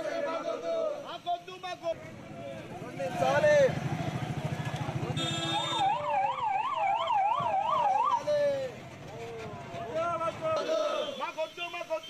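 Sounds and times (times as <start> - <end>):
street noise: 0.0 - 12.0
voices: 0.0 - 12.0.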